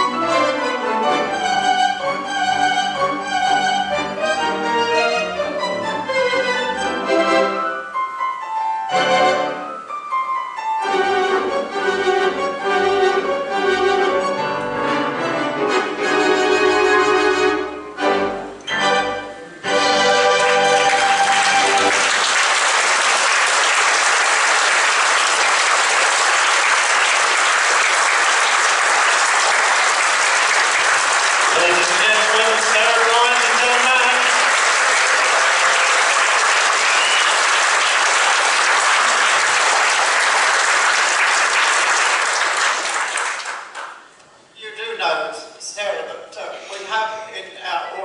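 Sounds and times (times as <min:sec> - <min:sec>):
organ chord: 0:10.8 - 0:39.9
audience applauding: 0:19.8 - 0:44.0
person speaking: 0:31.5 - 0:34.5, 0:44.6 - 0:48.0.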